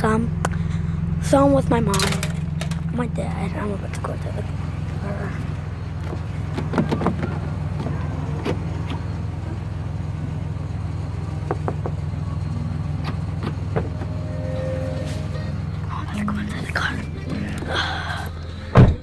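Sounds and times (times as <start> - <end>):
car interior drone: 0.0 - 19.0.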